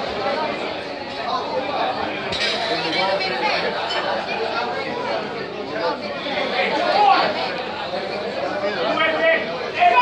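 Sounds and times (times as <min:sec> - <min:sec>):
crowd chatter in a large hall: 0:00.0 - 0:10.0.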